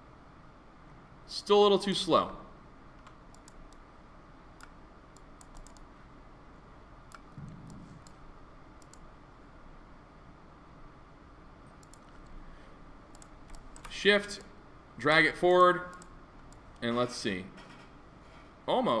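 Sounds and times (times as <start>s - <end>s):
mouse and keyboard clicks: 3.0s - 3.8s, 4.6s - 5.9s, 11.8s - 12.3s, 13.1s - 13.9s
short low hum: 7.1s - 9.0s.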